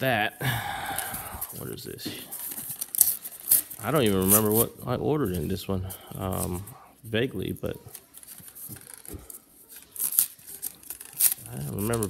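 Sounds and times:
packaging crinkling and tearing: 1.0s - 4.7s, 7.6s - 12.0s.

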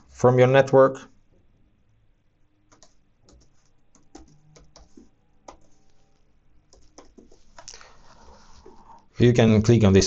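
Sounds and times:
faint keyboard keystrokes: 2.7s - 7.8s.

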